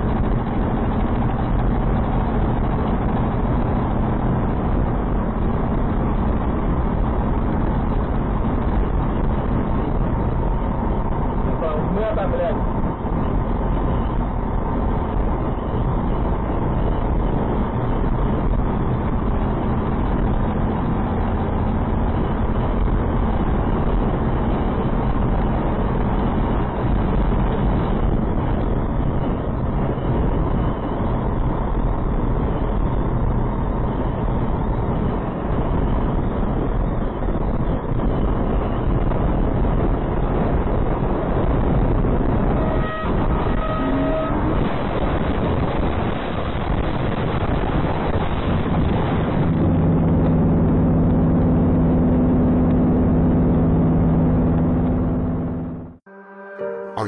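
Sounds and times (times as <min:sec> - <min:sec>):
wind noise in truck cab: 0:00.0 - 0:56.1
road noise: 0:00.0 - 0:57.0
short horn tone: 0:42.4 - 0:45.0, 0:56.1 - 0:57.0.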